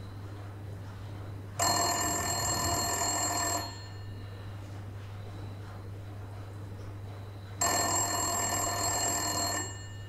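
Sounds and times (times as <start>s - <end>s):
steady low hum: 0.0s - 10.0s
telephone ringing: 1.6s - 4.5s, 7.6s - 10.0s.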